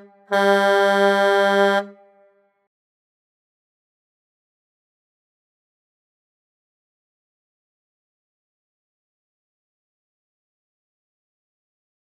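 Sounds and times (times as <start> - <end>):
horn-like blasts: 0.0 - 2.4.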